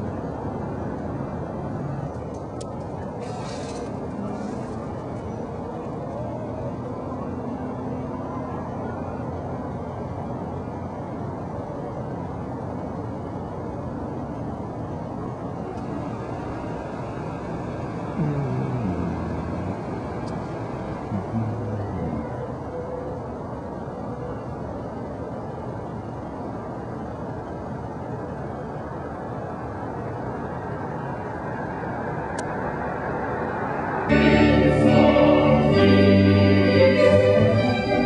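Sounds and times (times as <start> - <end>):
car rumbling slowly: 0.0 - 38.0
loud organ music: 34.1 - 38.0.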